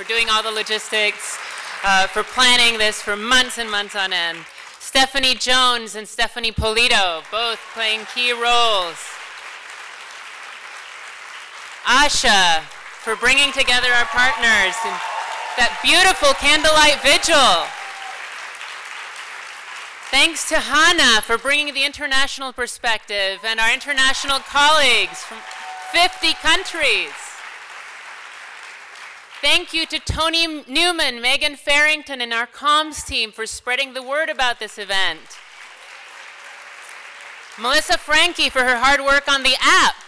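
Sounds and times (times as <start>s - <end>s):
audience applauding: 0.0s - 4.8s, 7.2s - 21.6s, 23.8s - 30.0s, 35.4s - 38.5s
speech: 0.0s - 9.1s, 11.9s - 15.0s, 20.2s - 25.3s, 29.4s - 35.3s, 37.6s - 40.0s.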